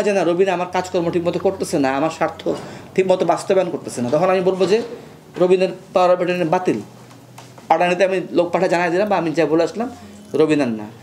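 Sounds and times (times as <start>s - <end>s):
man talking: 0.0s - 6.9s, 7.7s - 11.0s.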